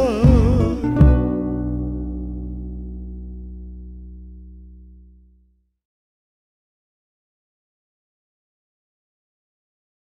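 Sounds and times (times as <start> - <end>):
acoustic guitar chord ringing: 0.0 - 5.6
deep bass note: 0.0 - 5.7.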